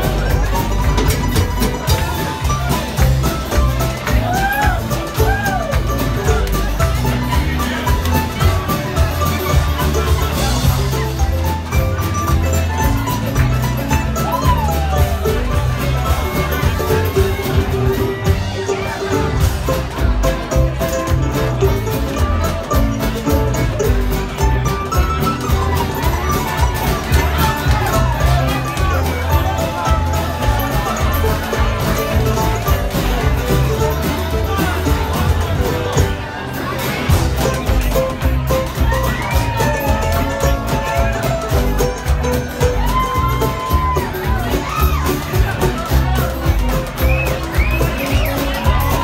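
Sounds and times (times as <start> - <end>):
bluegrass band playing: 0.0 - 49.0
crowd noise: 0.0 - 49.0.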